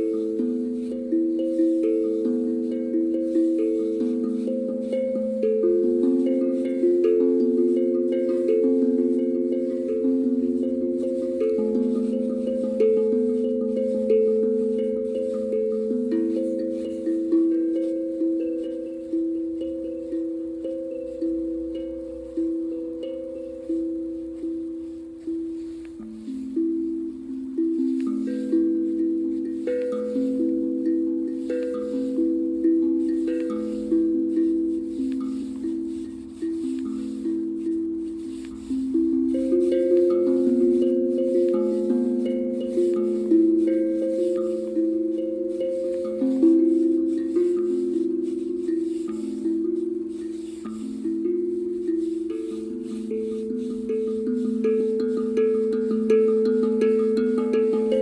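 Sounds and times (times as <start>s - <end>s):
steel tongue drum melody: 0.0s - 58.0s.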